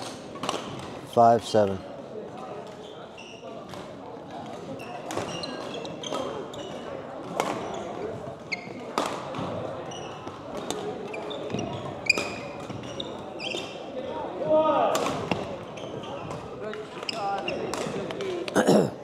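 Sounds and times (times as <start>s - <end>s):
shoes squeaking on court floor: 1.7s - 14.4s, 15.1s - 18.5s.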